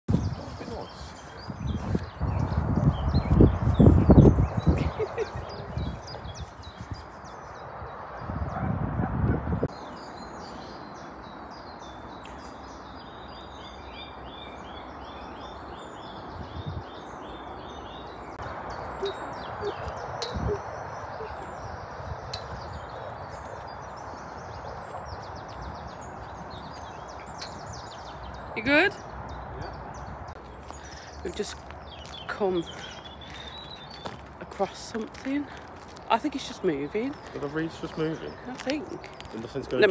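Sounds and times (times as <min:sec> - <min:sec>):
small birds chirping and trilling: 0:00.1 - 0:08.7, 0:09.4 - 0:39.9.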